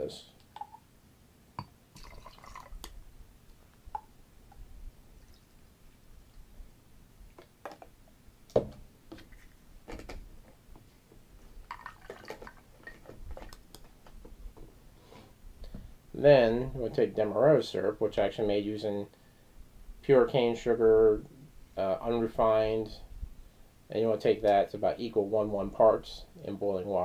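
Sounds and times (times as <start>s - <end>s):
juice pouring over ice: 1.9s - 2.9s, 11.7s - 13.0s.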